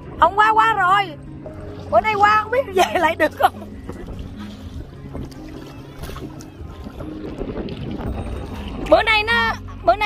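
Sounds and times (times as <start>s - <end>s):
faint background music: 0.0s - 10.0s
wind buffeting microphone: 0.0s - 10.0s.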